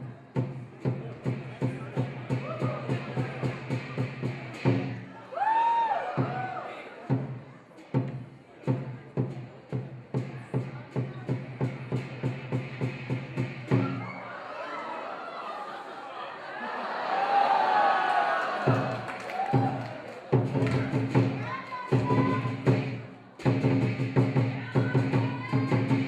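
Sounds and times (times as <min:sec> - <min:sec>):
crowd murmur: 0:00.0 - 0:26.0
large drum beating: 0:00.3 - 0:05.0, 0:18.6 - 0:26.0.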